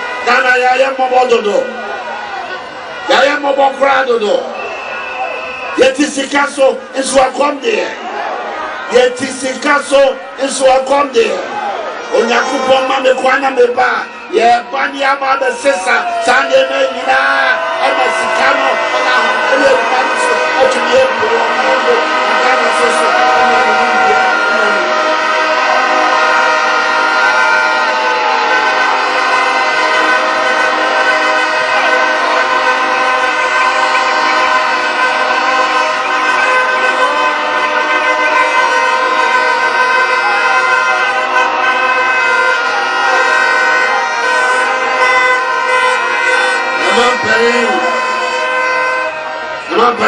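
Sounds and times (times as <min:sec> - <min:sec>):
crowd sounding horns: 0:00.0 - 0:50.0.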